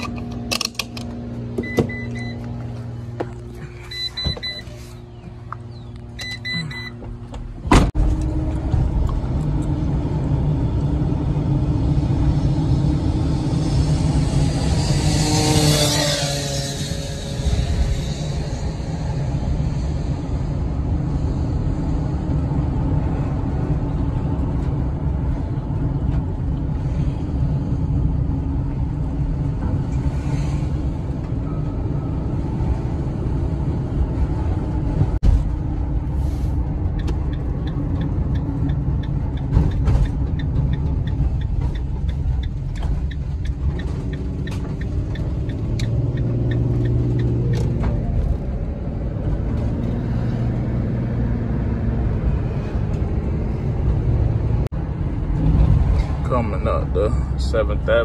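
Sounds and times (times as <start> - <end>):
van engine and road rumble: 0.0 - 58.0
quick regular ticks: 36.9 - 47.7.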